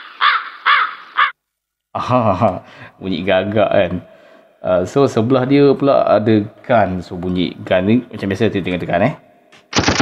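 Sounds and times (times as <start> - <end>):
crow cawing sound effect: 0.0 - 1.4.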